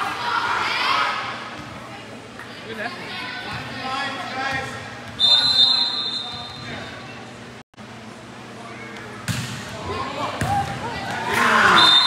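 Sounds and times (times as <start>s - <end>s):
people shouting: 10.5s - 12.0s.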